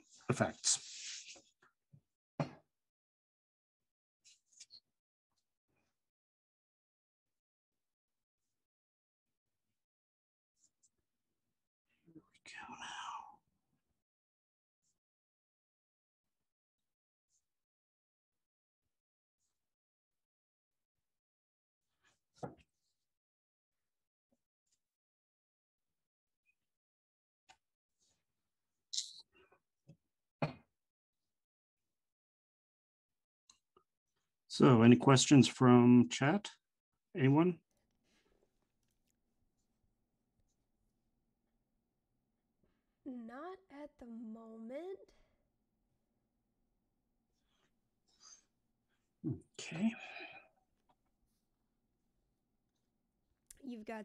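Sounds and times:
person breathy whisper: 12.3s - 13.4s.

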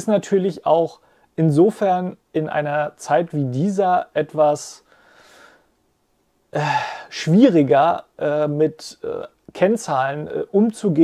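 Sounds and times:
man speaking: 0.0s - 4.9s, 6.5s - 11.0s
man breathing out: 4.9s - 5.7s, 6.6s - 7.1s.

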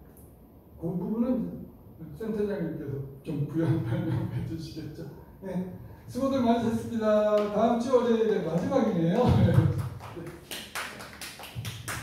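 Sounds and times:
people clapping: 7.3s - 7.7s, 8.5s - 12.0s.

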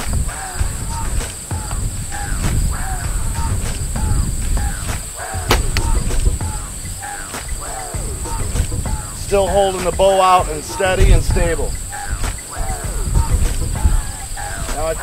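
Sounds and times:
insects chirring: 0.0s - 15.0s
arrow striking target: 5.5s - 6.3s
bow string snap: 5.5s - 6.4s.

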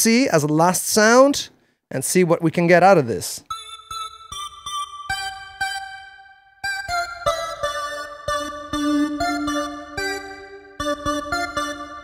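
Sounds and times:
organ chords: 3.5s - 12.0s.

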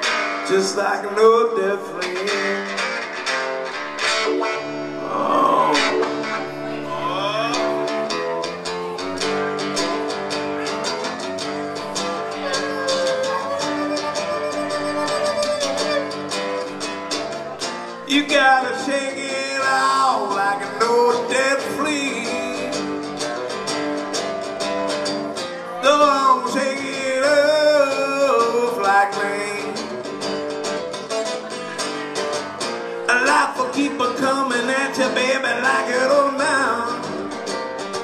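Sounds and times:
blues-rock band playing: 0.0s - 38.0s
pitch-bending guitar lead line: 0.0s - 38.0s
strummed acoustic-electric guitar: 0.0s - 38.0s.

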